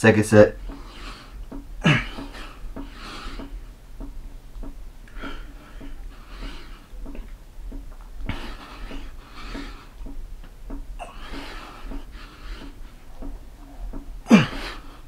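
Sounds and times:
light taps: 0.5s - 14.9s
man breathing heavily: 0.6s - 3.8s, 5.0s - 15.0s.

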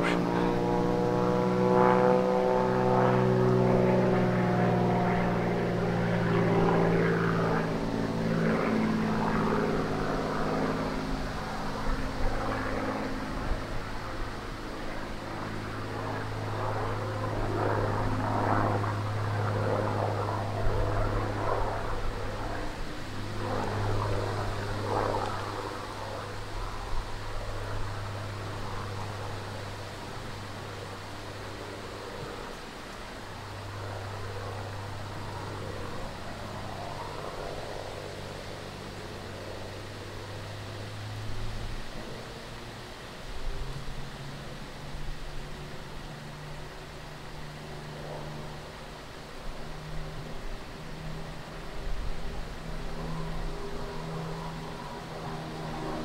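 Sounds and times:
propeller plane engine in flight: 0.0s - 56.0s.

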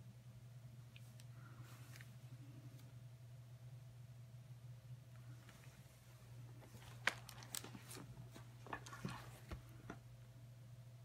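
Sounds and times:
faint low hum: 0.0s - 11.0s
paper rustling: 6.6s - 10.0s.

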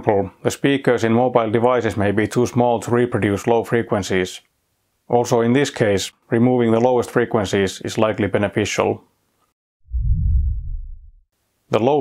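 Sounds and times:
deep bass sound effect: 9.8s - 11.2s.

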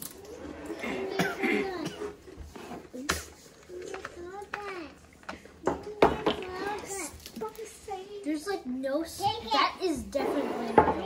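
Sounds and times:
children talking quietly: 0.0s - 11.0s.

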